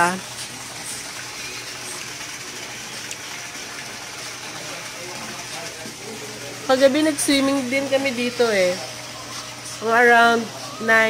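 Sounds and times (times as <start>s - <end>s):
fountain jet splashing into pool: 0.0s - 9.1s.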